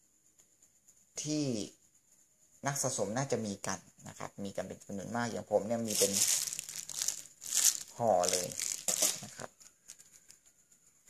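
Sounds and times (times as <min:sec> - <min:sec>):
plastic bag of coins crinkling: 0:05.8 - 0:10.4.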